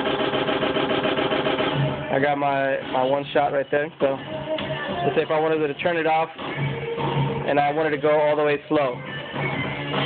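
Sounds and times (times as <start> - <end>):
raspy buzzing stutter effect: 0.0 - 3.2.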